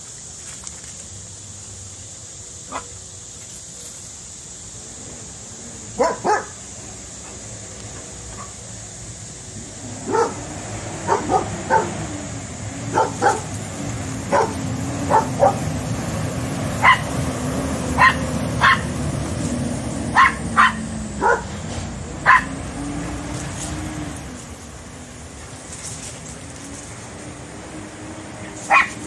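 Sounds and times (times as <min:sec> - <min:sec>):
small dog barking sharply: 0:06.0 - 0:06.5, 0:11.1 - 0:12.0, 0:14.3 - 0:15.6, 0:16.8 - 0:17.1, 0:18.0 - 0:18.9, 0:20.1 - 0:21.5, 0:22.2 - 0:22.6, 0:28.7 - 0:29.0.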